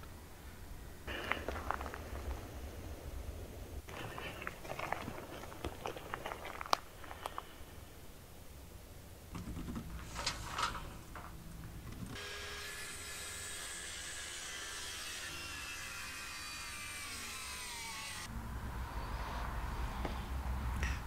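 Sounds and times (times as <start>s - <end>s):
circular saw cutting wood: 12.2s - 18.3s.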